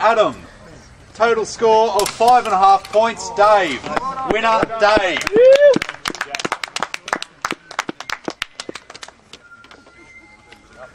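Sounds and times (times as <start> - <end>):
people clapping: 3.9 - 9.4.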